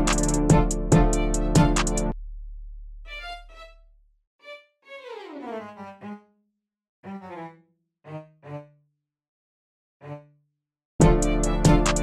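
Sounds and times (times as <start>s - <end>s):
synthesized string notes: 0.0s - 2.2s, 11.0s - 12.0s.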